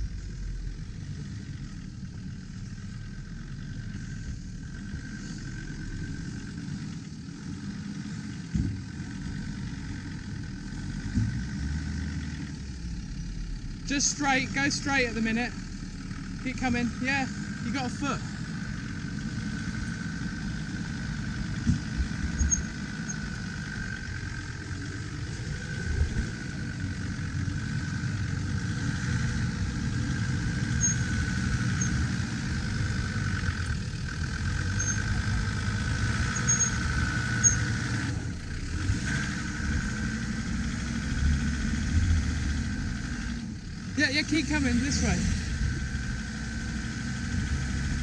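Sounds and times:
engine running at low revs: 0:00.0 - 0:48.0
vehicle knocking over bumps: 0:08.4 - 0:09.1, 0:21.4 - 0:23.0
steady whine: 0:13.1 - 0:43.6.

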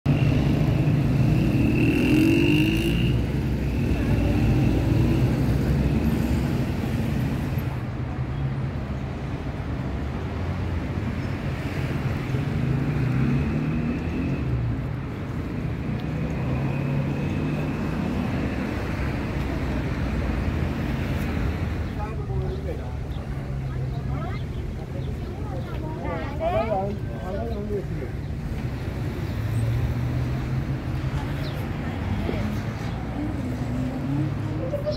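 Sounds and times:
car traffic passing: 0:00.1 - 0:34.9
people talking: 0:22.0 - 0:28.2, 0:31.1 - 0:34.9.

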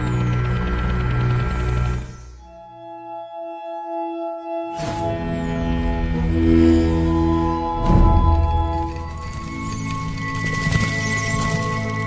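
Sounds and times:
deep electronic drone: 0:00.0 - 0:02.8.

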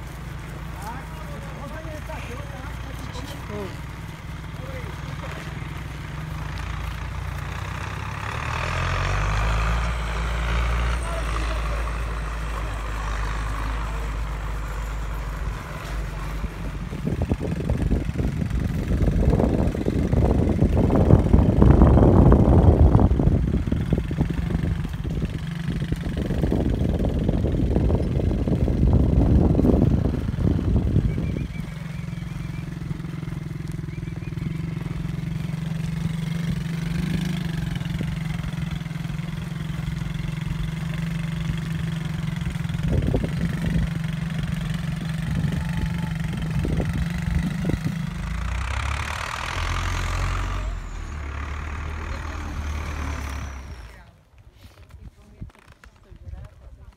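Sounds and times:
vehicle engine running: 0:00.0 - 0:56.9.

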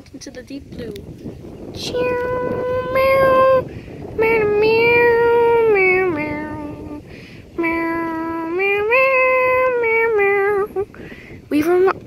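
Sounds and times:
child singing meow notes: 0:01.8 - 0:07.0, 0:07.6 - 0:10.9.

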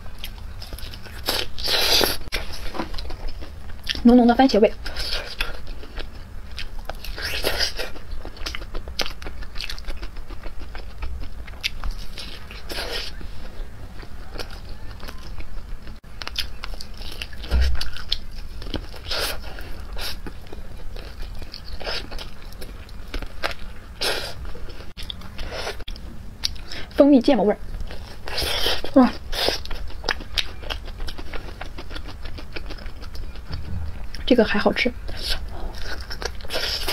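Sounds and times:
biting and wet chewing: 0:00.0 - 0:27.0, 0:27.7 - 0:36.9.

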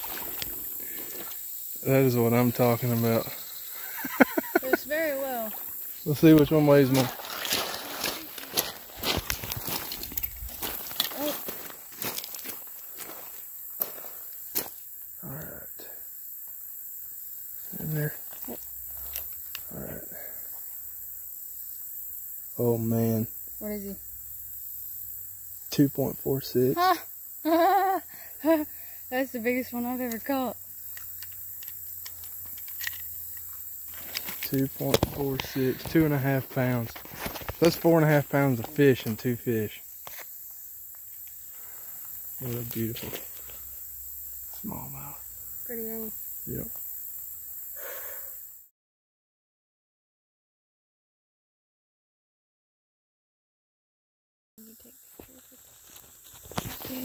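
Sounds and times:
footsteps on gravel: 0:05.5 - 0:14.8, 0:36.8 - 0:38.6.

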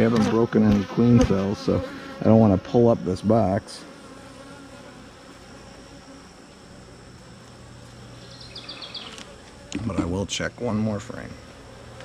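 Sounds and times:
honey bees buzzing: 0:00.0 - 0:12.0.

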